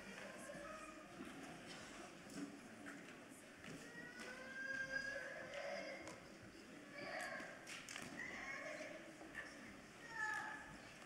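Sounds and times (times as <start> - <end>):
faint background voices: 0.0 - 11.0.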